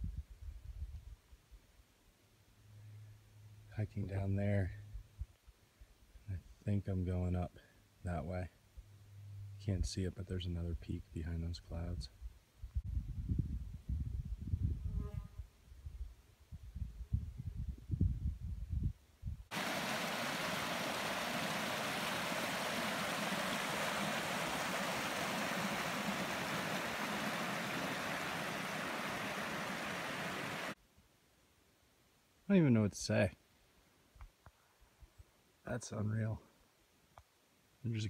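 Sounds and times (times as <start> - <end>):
wind buffeting microphone: 12.8 - 15.0, 15.8 - 30.7
stream rushing over boulders: 19.5 - 30.8.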